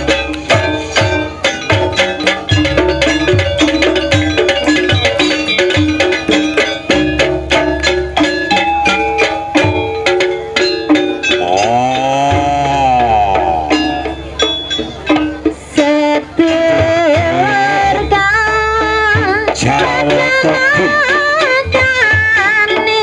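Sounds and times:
gong-chime notes: 0.0s - 15.8s
fast hand-drum strokes: 0.0s - 23.0s.

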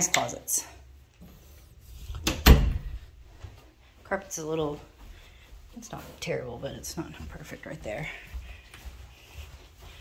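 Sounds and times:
door thumping shut against frame: 2.2s - 2.9s.

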